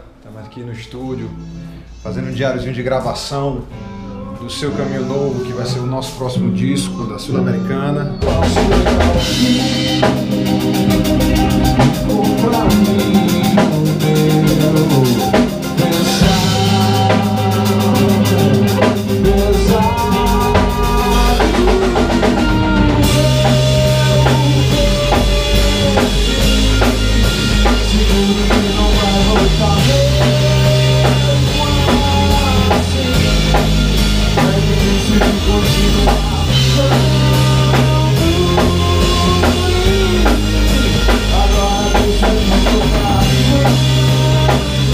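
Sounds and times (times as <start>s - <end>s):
rock band playing: 1.0s - 44.9s.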